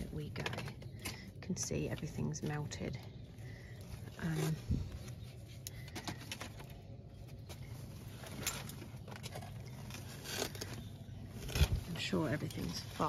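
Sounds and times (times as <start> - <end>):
short crackles and scrapes: 4.0 - 13.0.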